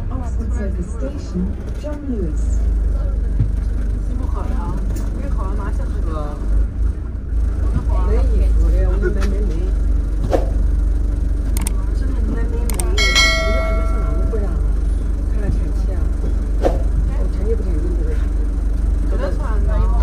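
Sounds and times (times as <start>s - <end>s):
people talking: 0.0s - 6.6s, 7.6s - 9.8s, 11.6s - 16.4s, 17.0s - 20.0s
bus engine rumble and road noise: 0.0s - 20.0s
sharp clicks: 11.6s - 11.8s, 12.7s - 13.0s.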